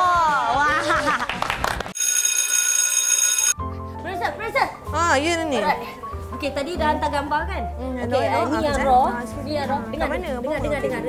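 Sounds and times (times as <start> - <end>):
laughter: 0.5 - 1.6
hand clapping: 1.2 - 2.0.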